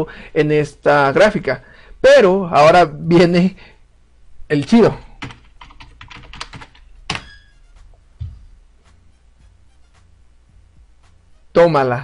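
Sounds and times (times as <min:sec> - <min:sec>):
keyboard typing clicks: 0:05.2 - 0:07.4.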